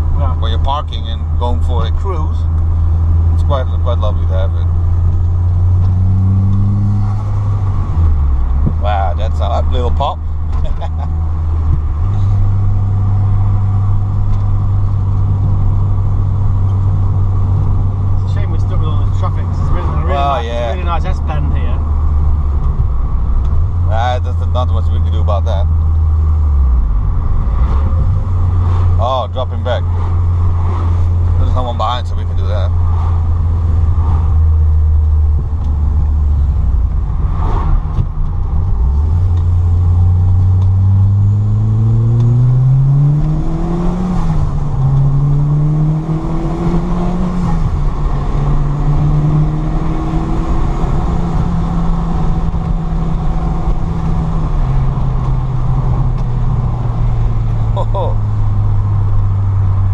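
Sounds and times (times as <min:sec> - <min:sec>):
car engine from inside cabin: 0:00.0 - 0:59.9.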